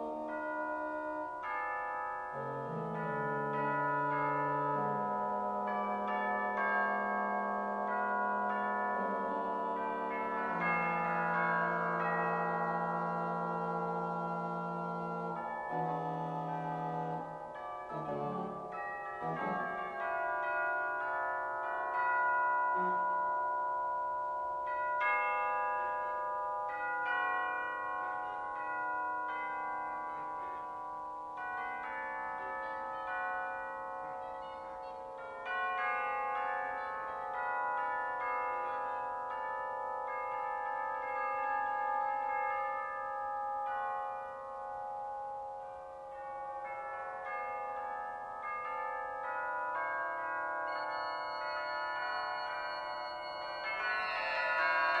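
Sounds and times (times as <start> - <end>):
pipe organ tones: 0.0 - 23.2, 52.0 - 55.0.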